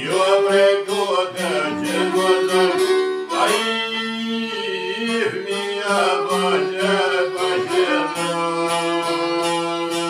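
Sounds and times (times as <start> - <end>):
long-necked lute: 0.0 - 10.0
man singing: 0.0 - 10.0
violin: 0.0 - 10.0.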